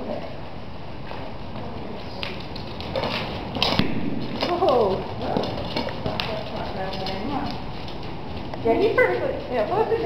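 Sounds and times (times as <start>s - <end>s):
horse hooves on arena footing: 1.0s - 10.0s.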